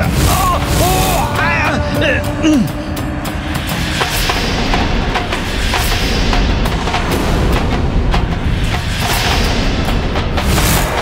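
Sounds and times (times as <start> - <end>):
man crying out: 0.0 - 3.1
dramatic background score: 0.0 - 11.0.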